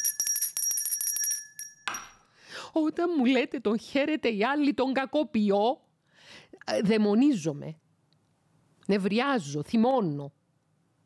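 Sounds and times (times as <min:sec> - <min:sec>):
small bell rung rapidly: 0:00.0 - 0:02.2.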